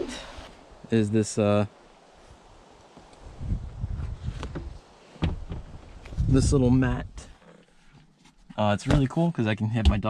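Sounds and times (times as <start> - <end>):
low thumps and handling rumble: 3.4 - 10.0.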